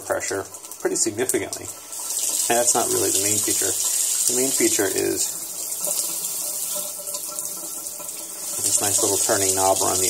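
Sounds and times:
faucet water running into sink: 0.0 - 10.0.

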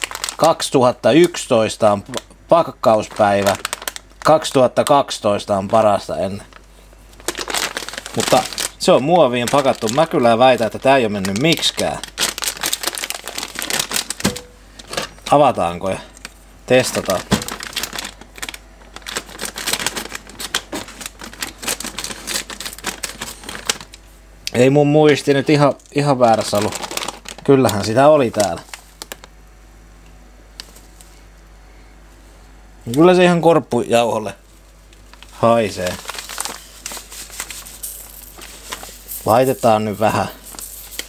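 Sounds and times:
plastic crinkling: 0.0 - 1.4, 2.0 - 5.0, 5.7 - 15.4, 16.1 - 24.1, 25.1 - 29.4, 34.4 - 41.0
crumbs crackling onto paper: 0.0 - 24.1, 25.1 - 29.4, 34.4 - 41.0
crumbs shaken onto baking paper: 7.3 - 14.2, 35.6 - 41.0.

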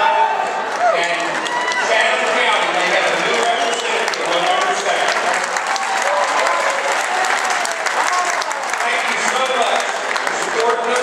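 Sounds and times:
man speaking over public address: 0.0 - 5.5, 8.2 - 11.0.

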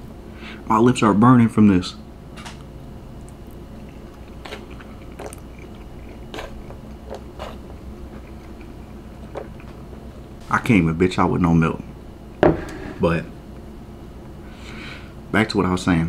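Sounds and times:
man chewing noodles: 3.2 - 10.4.

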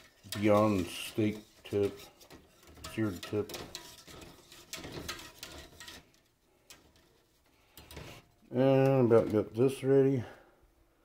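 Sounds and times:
man speaking: 8.5 - 10.4.

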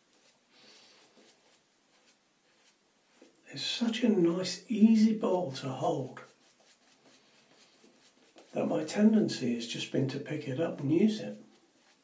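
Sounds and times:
shaving brush rubbing lather: 0.0 - 12.0.

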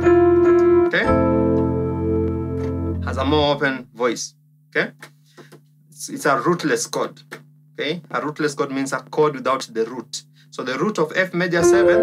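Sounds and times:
piano chord ringing: 0.0 - 3.6, 11.6 - 12.0.

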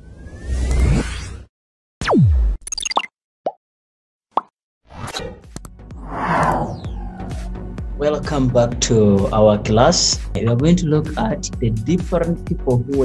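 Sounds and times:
downward sweeping tone: 0.0 - 1.4.

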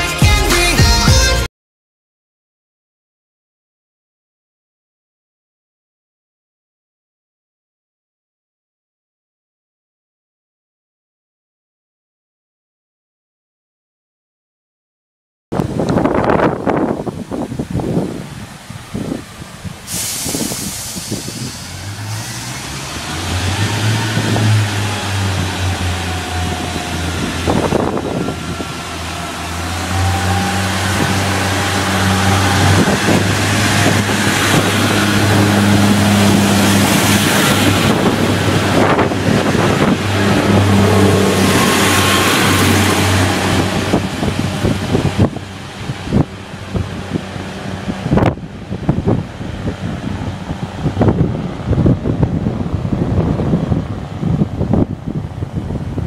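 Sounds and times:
diesel train engine revving: 15.6 - 56.0
wind on microphone: 15.6 - 56.0.

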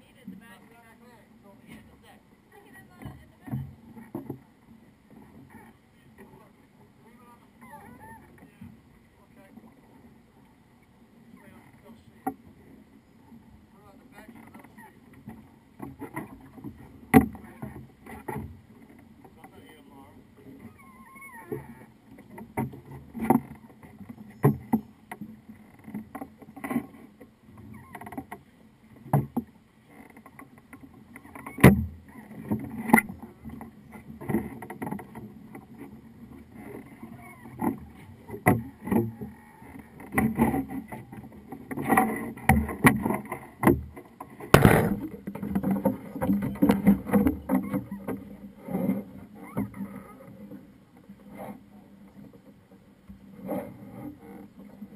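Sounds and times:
knocks and thumps on boat deck: 14.2 - 19.7, 21.4 - 29.5, 30.1 - 50.0.

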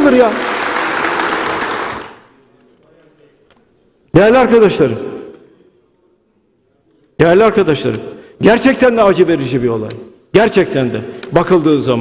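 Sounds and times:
audience applause: 0.0 - 2.3.

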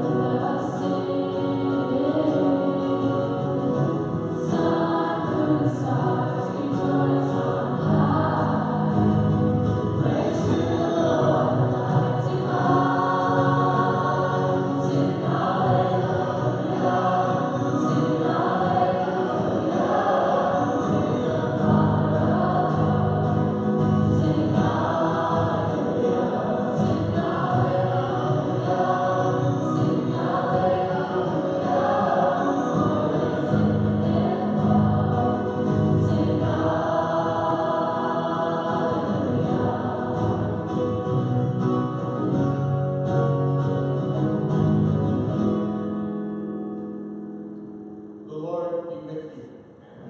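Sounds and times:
choir singing a hymn: 0.0 - 42.4.

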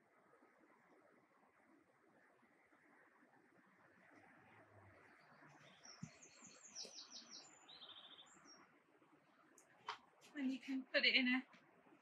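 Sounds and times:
small bird trilling: 5.7 - 8.6.

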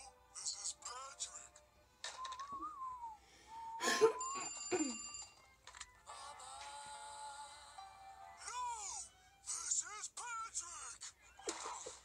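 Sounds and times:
telephone bell ringing: 4.0 - 5.4.

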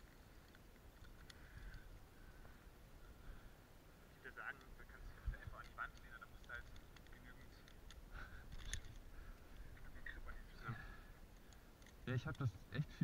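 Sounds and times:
carabiners clicking: 5.6 - 9.1, 11.3 - 12.5.

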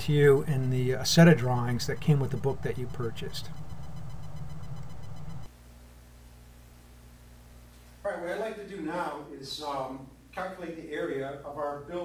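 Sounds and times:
faint electrical hum: 0.0 - 12.0
low background hum: 0.0 - 12.0.

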